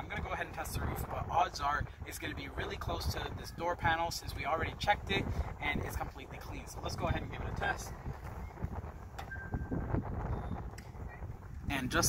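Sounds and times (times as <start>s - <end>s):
wind buffeting microphone: 0.0s - 12.0s
short electronic beep: 9.2s - 10.5s.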